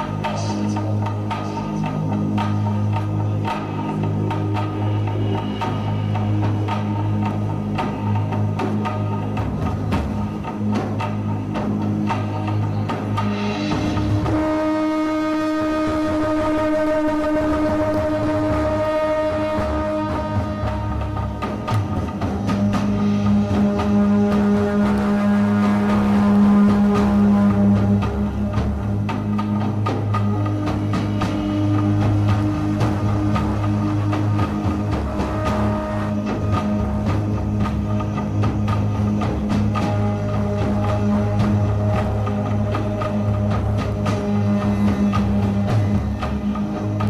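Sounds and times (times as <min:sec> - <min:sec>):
horn droning steady note: 0:13.2 - 0:47.0.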